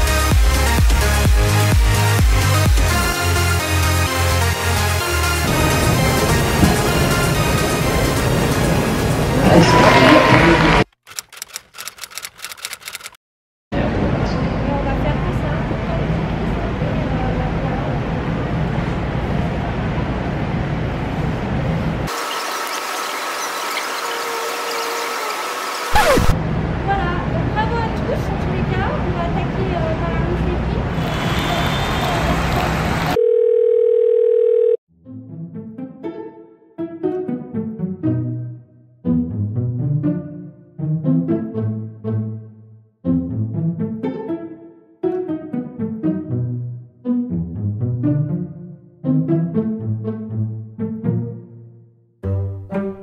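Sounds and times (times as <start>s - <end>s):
typewriter key clacks: 11.0s - 13.2s.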